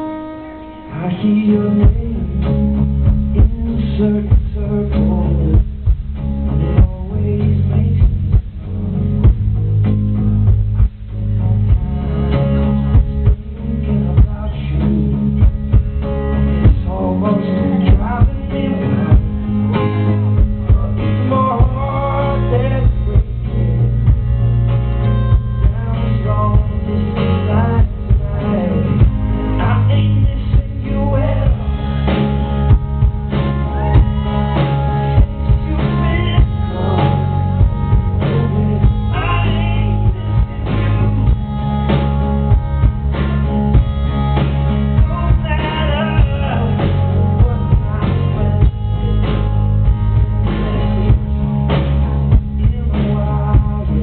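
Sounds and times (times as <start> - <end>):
acoustic guitar strumming: 0.0 - 54.0
live band music: 0.0 - 54.0
man singing: 0.8 - 10.0, 11.4 - 24.6, 25.3 - 41.5, 44.9 - 51.4, 52.3 - 54.0
drum kit beat: 1.8 - 54.0.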